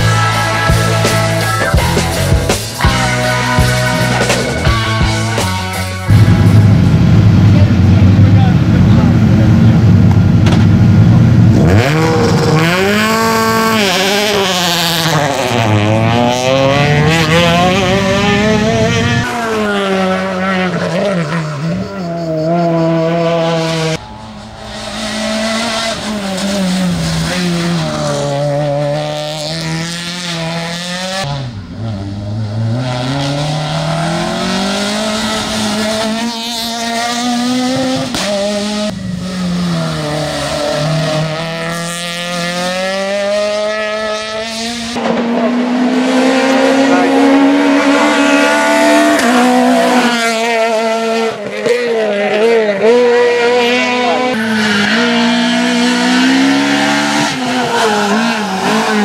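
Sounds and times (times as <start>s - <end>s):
rally car engine revving: 0.0s - 59.0s.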